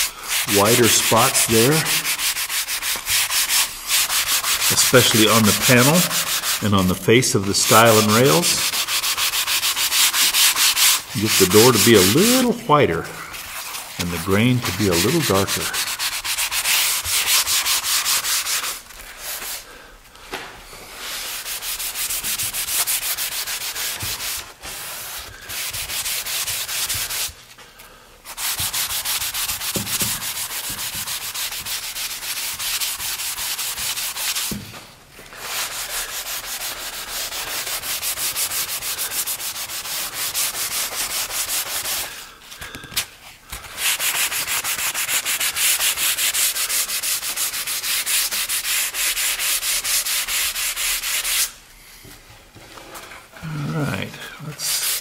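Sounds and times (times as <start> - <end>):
sanding sponge scratching wood: 0.0 - 19.6, 21.0 - 27.4, 28.3 - 34.6, 35.4 - 42.2, 43.8 - 51.6, 54.6 - 55.0.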